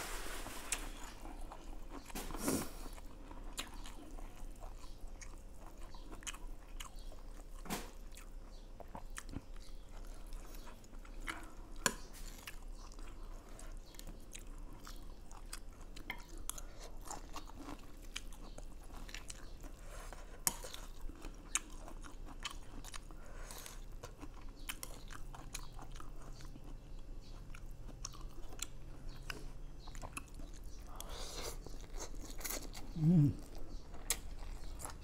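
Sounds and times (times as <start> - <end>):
chewing dry noodles: 0.7 - 35.0.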